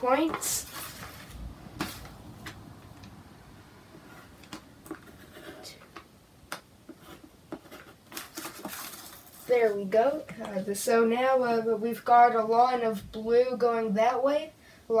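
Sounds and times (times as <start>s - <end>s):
paper shifting: 0.2s - 2.6s, 7.0s - 9.8s.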